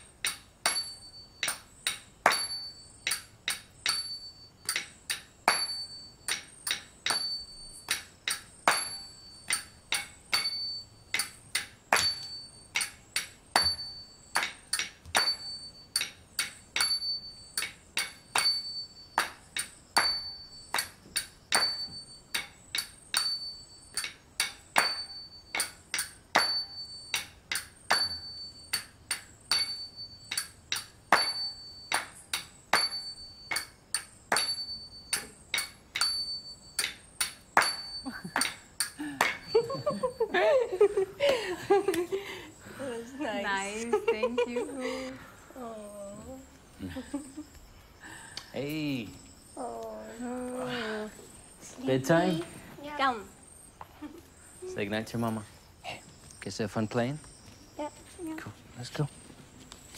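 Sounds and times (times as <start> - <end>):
hand cymbals clinking: 0.0 - 55.7.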